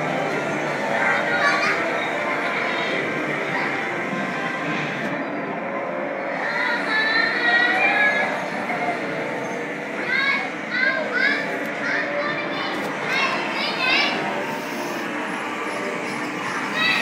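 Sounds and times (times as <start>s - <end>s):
background din of voices: 0.0s - 17.0s
children shrieking: 0.9s - 3.1s, 6.3s - 15.1s, 16.2s - 17.0s.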